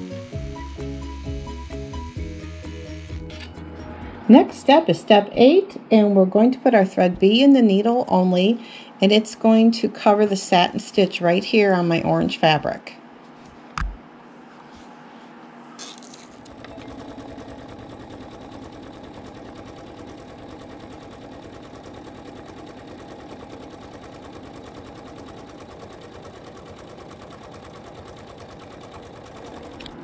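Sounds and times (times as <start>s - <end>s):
embroidery machine sewing: 0.0s - 3.4s, 16.1s - 30.0s.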